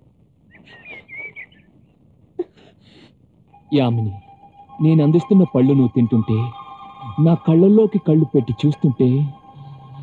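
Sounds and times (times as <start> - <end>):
bird chirping: 0.5 - 2.0.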